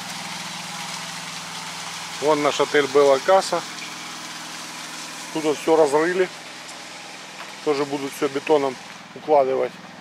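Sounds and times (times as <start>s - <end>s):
plate compactor engine running: 0.0s - 10.0s.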